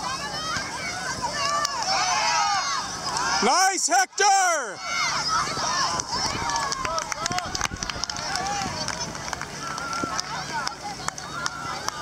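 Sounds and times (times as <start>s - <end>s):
players and spectators shouting: 0.0s - 9.0s.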